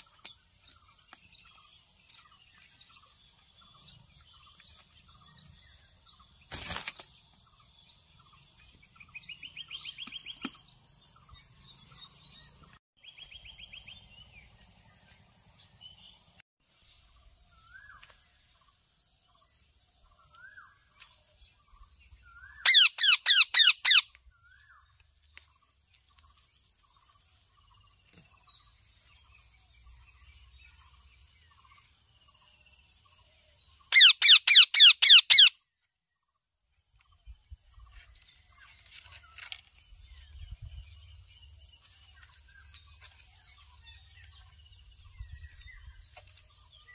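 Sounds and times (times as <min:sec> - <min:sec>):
parakeets calling rapidly: 0:22.6 - 0:24.0, 0:33.9 - 0:35.5.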